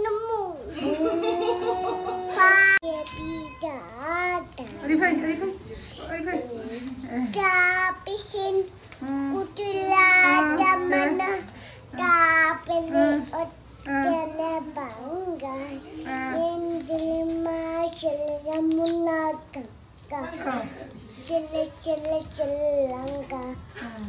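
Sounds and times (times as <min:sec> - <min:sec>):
child singing: 0:02.2 - 0:04.8, 0:07.3 - 0:23.8.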